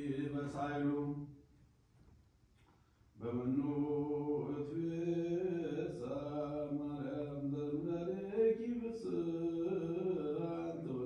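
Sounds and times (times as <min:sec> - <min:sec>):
man chanting: 0:00.0 - 0:01.3, 0:03.2 - 0:11.0.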